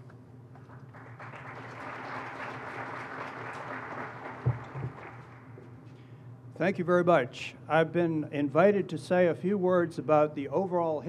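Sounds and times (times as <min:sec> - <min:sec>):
audience applauding: 0:00.6 - 0:05.5.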